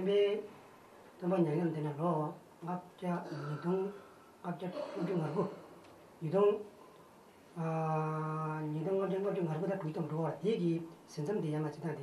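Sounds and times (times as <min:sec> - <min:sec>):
man speaking: 0:00.0 - 0:00.5, 0:01.2 - 0:06.8, 0:07.6 - 0:12.0.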